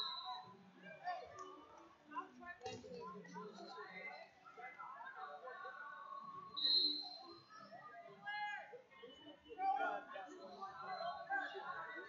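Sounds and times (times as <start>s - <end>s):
chatter and calls echoing: 0.0s - 12.0s.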